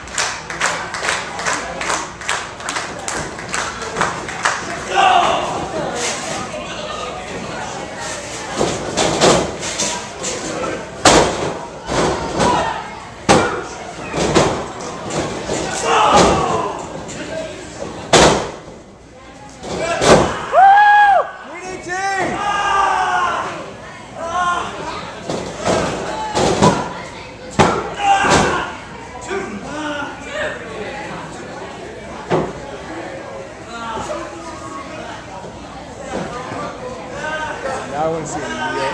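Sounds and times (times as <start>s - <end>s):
small crowd: 0.0s - 38.9s
people shouting: 4.9s - 5.7s, 15.7s - 16.9s, 22.0s - 23.6s, 27.7s - 28.8s.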